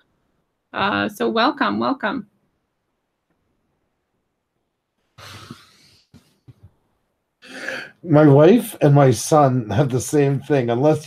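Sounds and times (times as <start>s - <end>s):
breathy throat noise: 5.2s - 6.3s.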